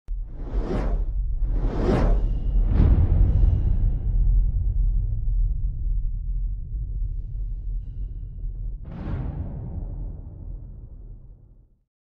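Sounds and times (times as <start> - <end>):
whooshes: 0.1 - 4.2
deep steady rumble: 0.1 - 8.9.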